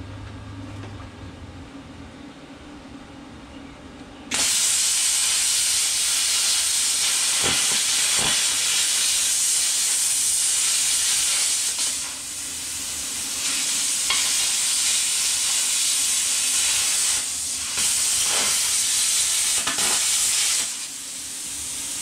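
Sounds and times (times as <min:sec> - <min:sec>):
plasma cutter hissing: 0:04.3 - 0:22.0.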